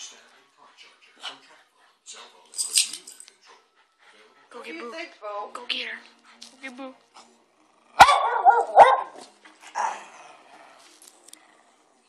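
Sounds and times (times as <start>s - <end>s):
dog barking: 8.0s - 9.2s.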